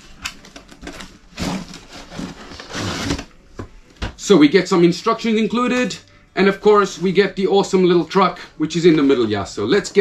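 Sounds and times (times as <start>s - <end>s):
cardboard box being opened: 0.5s - 3.3s.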